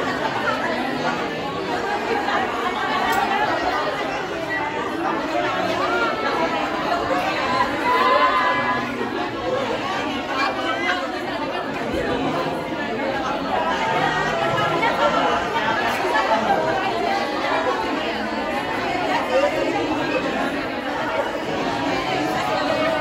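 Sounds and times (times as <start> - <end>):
crowd chatter: 0.0 - 23.0.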